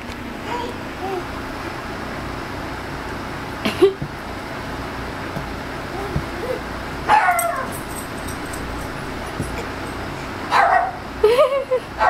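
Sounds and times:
dog barking: 0:07.1 - 0:08.6, 0:10.5 - 0:11.1.

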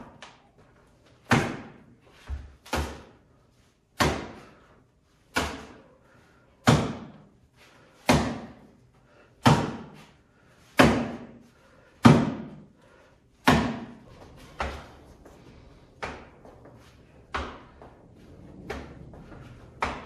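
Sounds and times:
boxing glove punches: 0:01.2 - 0:03.2, 0:04.0 - 0:04.6, 0:05.2 - 0:05.8, 0:06.6 - 0:07.3, 0:08.0 - 0:08.7, 0:09.4 - 0:10.1, 0:10.7 - 0:11.4, 0:12.0 - 0:12.7, 0:13.4 - 0:15.0.

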